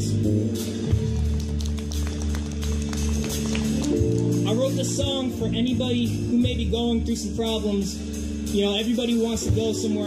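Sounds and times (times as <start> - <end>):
keyboard and bass sustained chords: 0.0 - 10.0.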